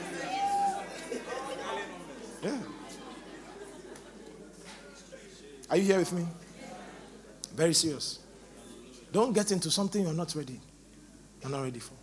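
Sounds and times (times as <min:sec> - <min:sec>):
congregation murmuring: 0:00.0 - 0:10.6.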